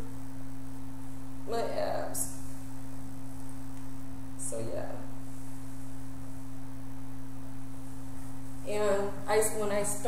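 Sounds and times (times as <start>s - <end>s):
low two-tone hum: 0.0s - 10.0s.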